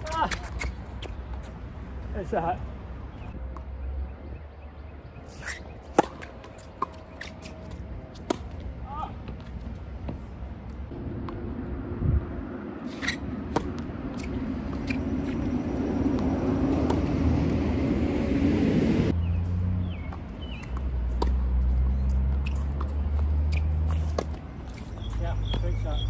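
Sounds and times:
low engine-like hum: 9.3s - 25.6s.

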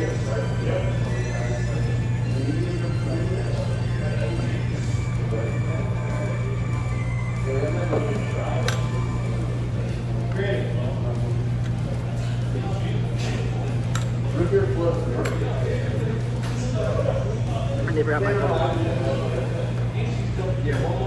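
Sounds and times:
steady low hum: 0.0s - 21.0s
indistinct voices: 17.0s - 20.3s.

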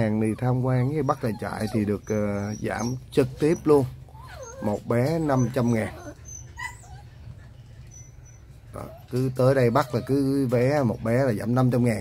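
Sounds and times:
low steady background noise: 0.0s - 12.0s
puppies whimpering: 0.0s - 12.0s.

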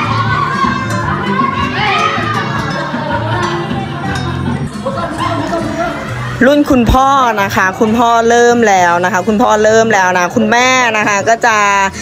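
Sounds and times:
children's voices: 0.0s - 7.1s
backing music: 0.0s - 12.0s.

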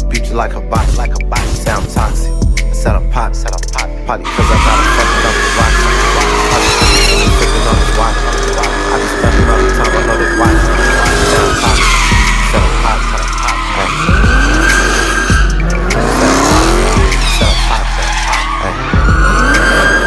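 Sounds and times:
hip-hop beat with deep bass: 0.0s - 20.0s
car engine revving: 4.2s - 20.0s
tyres squealing: 4.2s - 20.0s.

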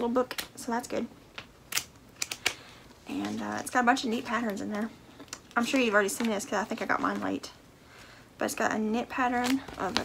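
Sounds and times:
paper booklet rustling: 3.0s - 4.9s, 5.5s - 7.4s, 9.3s - 10.0s.

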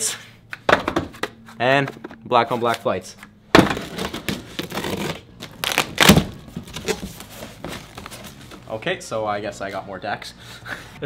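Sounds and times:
cardboard ripping: 3.6s - 8.6s
cardboard scraping and crinkling: 3.7s - 8.8s.

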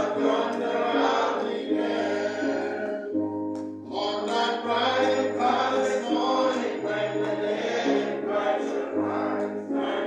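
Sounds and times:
congregation singing a hymn: 0.0s - 3.2s, 3.9s - 10.0s.

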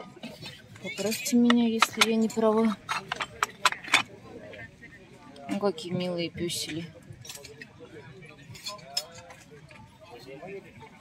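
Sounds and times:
faint background talking: 0.0s - 11.0s.

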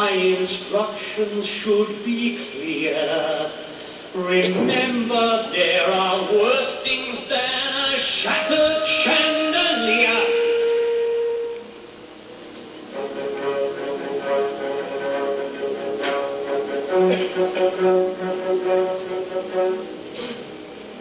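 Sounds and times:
dark sustained orchestral chords: 8.2s - 21.0s
orchestra held note: 8.3s - 12.1s.

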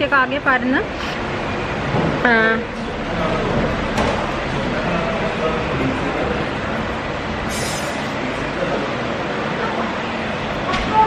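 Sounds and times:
loud rumbling background noise: 0.0s - 11.0s.

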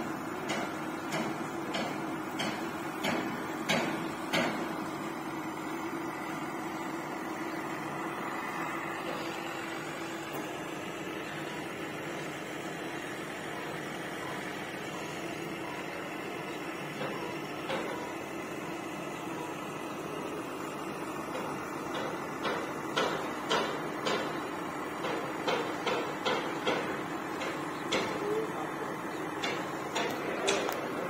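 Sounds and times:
crane engine droning: 0.0s - 31.0s.

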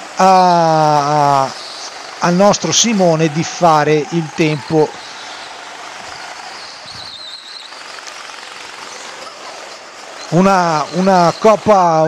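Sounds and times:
go-kart engine rushing: 0.0s - 12.0s
brief high whine: 1.2s - 9.6s.

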